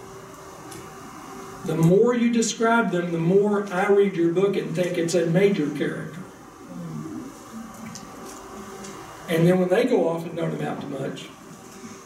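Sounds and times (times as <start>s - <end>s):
faint voice murmuring: 6.6s - 7.8s.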